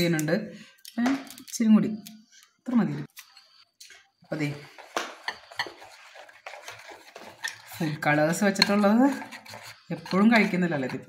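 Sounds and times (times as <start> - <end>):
spoon scraping bowl: 3.2 - 11.0.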